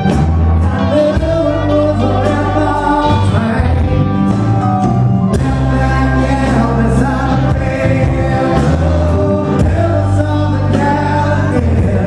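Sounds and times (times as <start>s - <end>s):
lead singer singing: 0.0s - 4.5s, 5.2s - 12.0s
bass: 0.0s - 12.0s
electric guitar: 0.0s - 12.0s.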